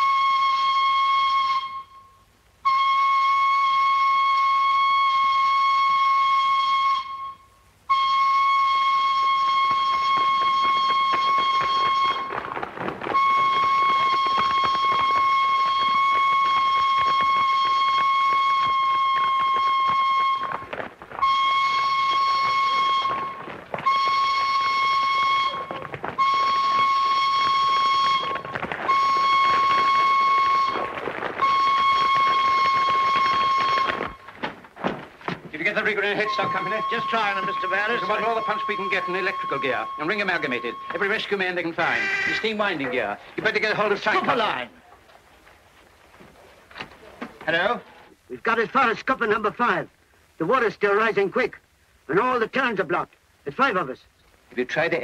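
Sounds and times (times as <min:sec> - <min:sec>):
steam whistle blasts: 0:00.0 - 0:12.4, 0:13.1 - 0:34.2, 0:41.8 - 0:42.6.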